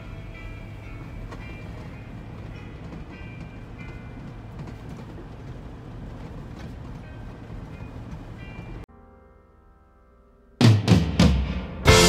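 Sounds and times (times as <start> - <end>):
bus engine rumble: 0.0 - 8.9.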